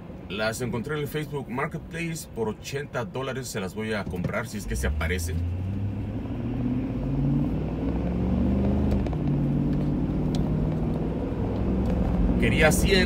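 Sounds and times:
road noise inside car: 0.0 - 13.0
car engine accelerating: 4.4 - 13.0.

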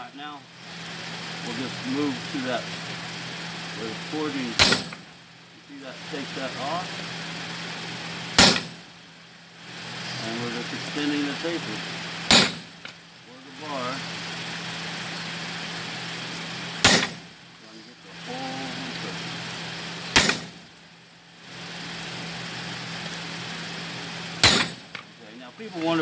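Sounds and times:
steady mechanical drone: 0.0 - 26.0
hammer striking steel on anvil: 4.6 - 5.1, 8.4 - 8.9, 12.3 - 12.8, 16.8 - 17.3, 20.2 - 20.6, 24.4 - 24.9.

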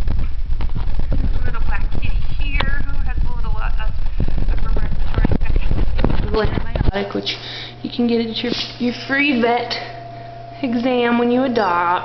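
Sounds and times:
handheld camera rumble: 0.0 - 7.2.

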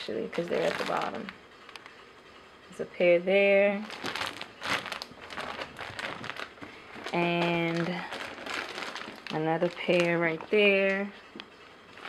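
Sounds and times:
plastic bags crinkling: 0.2 - 2.0, 3.8 - 11.2.

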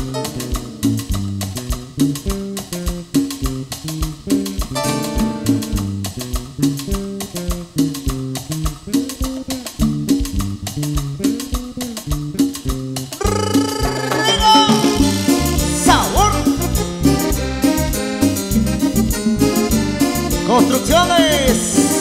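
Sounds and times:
drums and hand percussion beat: 0.0 - 22.0
electric bass solo: 0.0 - 22.0.

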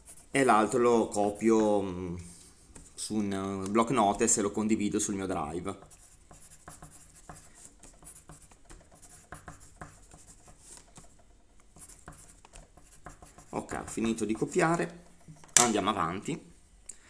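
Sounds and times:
pen scratching on paper: 0.0 - 0.7, 5.7 - 15.4.

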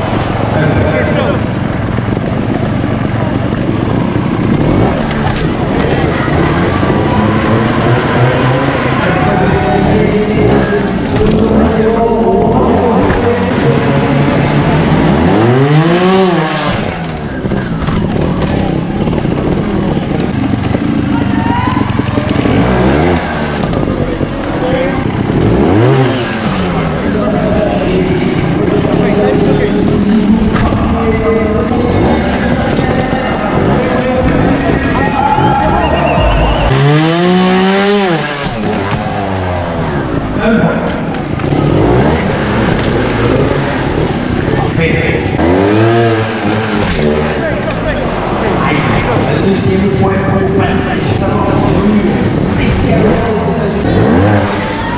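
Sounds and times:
motorcycle engine revving: 0.0 - 54.9
announcer over pa: 5.7 - 18.4.

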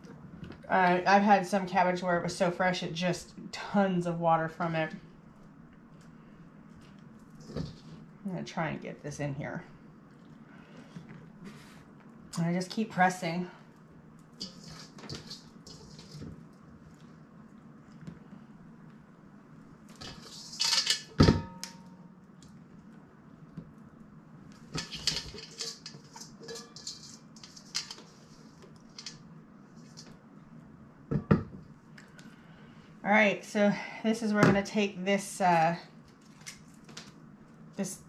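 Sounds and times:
cabbage rustling and scraping: 14.4 - 16.5, 24.7 - 29.1.

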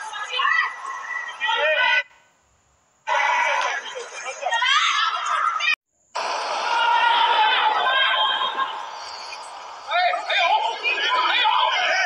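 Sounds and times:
voices calling out: 0.0 - 2.2, 3.0 - 12.0.

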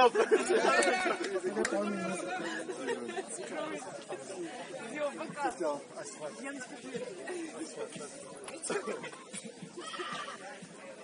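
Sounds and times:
chatter of people talking: 0.0 - 11.0.

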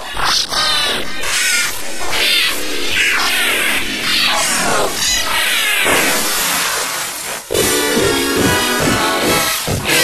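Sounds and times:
distorted warbling dance music: 7.5 - 10.0.

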